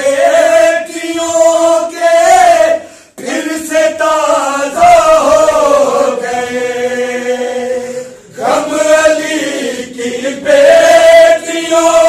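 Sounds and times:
men singing in chorus: 0.0 - 12.0.

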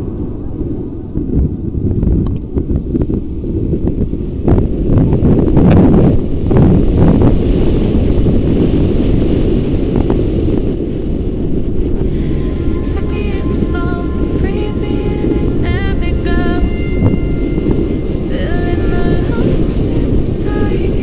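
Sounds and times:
road noise: 0.0 - 9.8, 10.6 - 21.0
wind buffeting microphone: 0.0 - 21.0.

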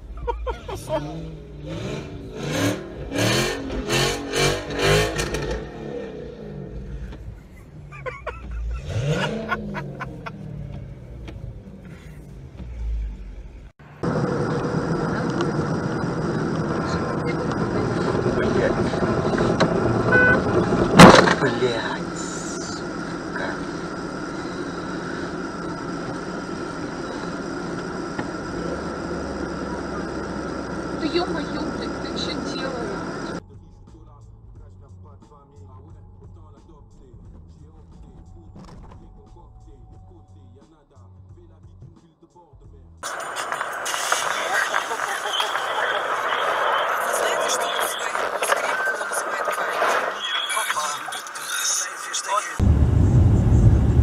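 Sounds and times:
car engine revving: 0.0 - 33.4, 43.0 - 54.0
in-car road noise: 0.0 - 54.0
people laughing: 0.1 - 1.2, 7.4 - 10.5
car crash: 18.5 - 22.4, 52.6 - 54.0.

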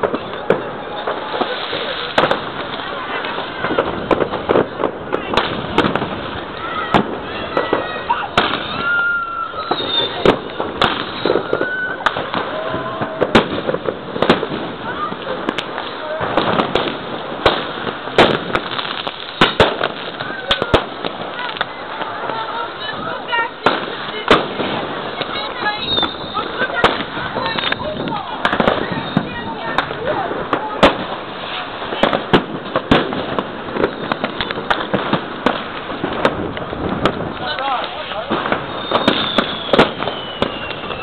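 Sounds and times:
fireworks and firecrackers banging: 0.0 - 41.0.

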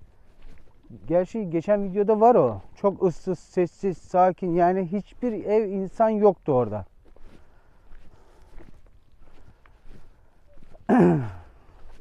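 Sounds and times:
footsteps on stony dirt: 0.0 - 12.0.

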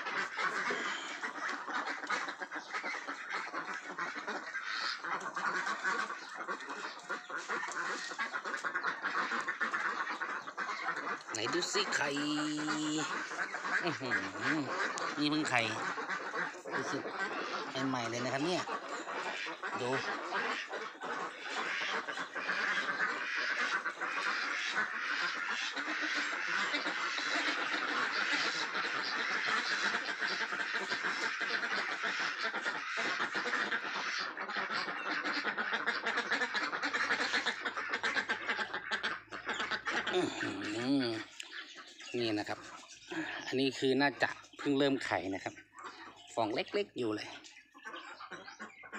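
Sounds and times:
flock of ducks quacking: 0.0 - 48.9.

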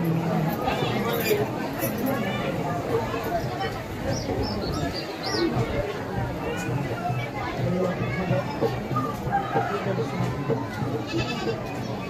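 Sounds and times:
crowd voices: 0.0 - 12.0
steady drum beat: 3.6 - 12.0
goat bleating: 11.0 - 11.6.

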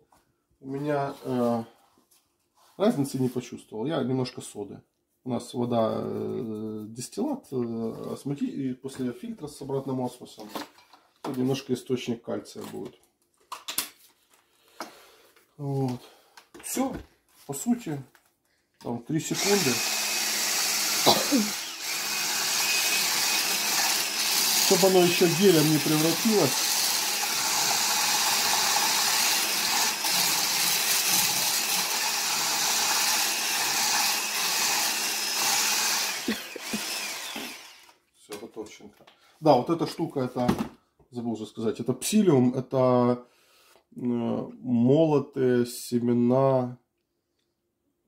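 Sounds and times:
immersion blender whisking batter: 19.4 - 38.0
kitchen items knocking and clattering: 40.4 - 40.8.

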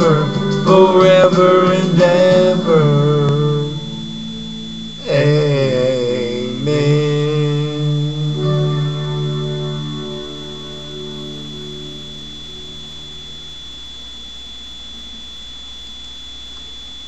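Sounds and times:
held music chord ringing: 0.0 - 15.9
high-pitched electronic whine: 0.0 - 17.0
low hum: 0.0 - 17.0.

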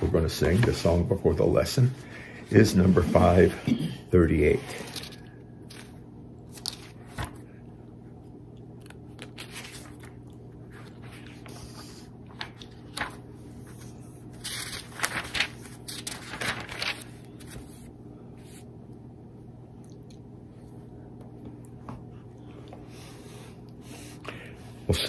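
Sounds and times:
paper pages rustling: 0.0 - 1.4, 4.4 - 7.5, 8.8 - 18.7
steady low hum: 0.0 - 25.0.

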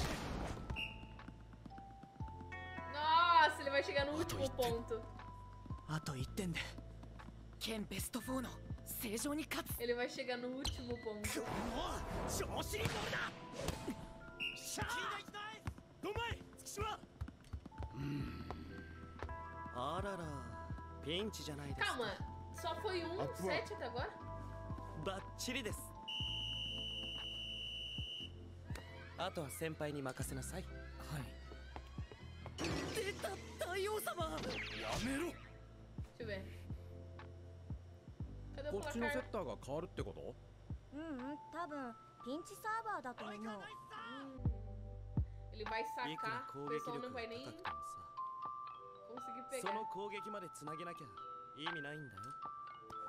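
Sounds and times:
faint background music: 0.0 - 53.0
referee's whistle long blast: 26.0 - 28.3.

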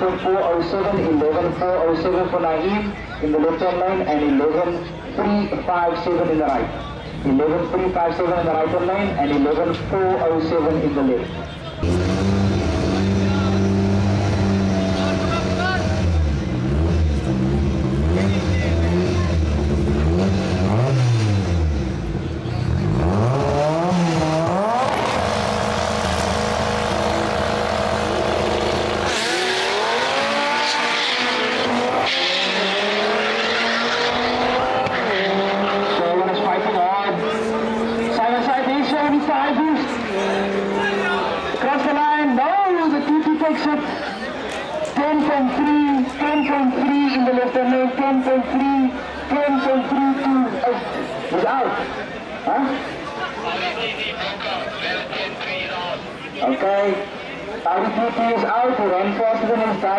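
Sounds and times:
drag racing car engines revving: 0.0 - 59.9.

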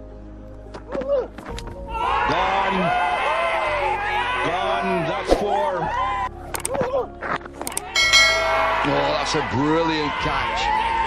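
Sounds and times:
sharp clicks: 6.5 - 6.8, 7.6 - 7.9.

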